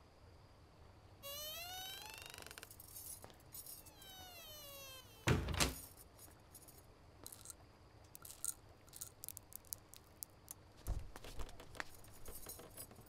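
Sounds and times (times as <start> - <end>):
door hinges creaking: 1.2 - 6.0
heavy door thud: 5.2 - 5.8.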